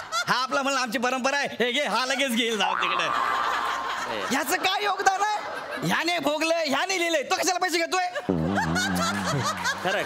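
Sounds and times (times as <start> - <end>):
audience laughing: 2.8 - 6.0, 8.2 - 10.0
man talking: 4.2 - 10.0.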